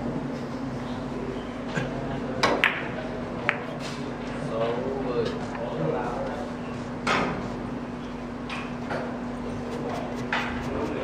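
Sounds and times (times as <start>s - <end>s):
cue tip tapping ball: 2.4s - 3.7s.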